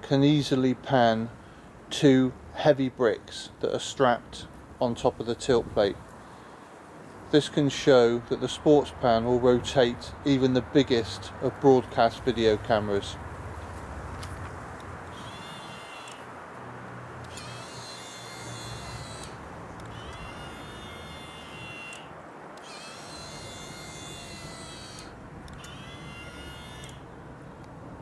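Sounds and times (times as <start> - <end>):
small electric motor whining: 15.1 - 16.3, 17.2 - 27.1.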